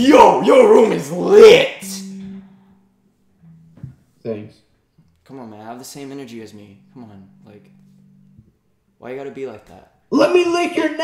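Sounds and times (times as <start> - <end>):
low guitar note: 0.1 - 4.6, 5.9 - 9.7
faint low tone: 1.8 - 4.6, 6.0 - 8.8.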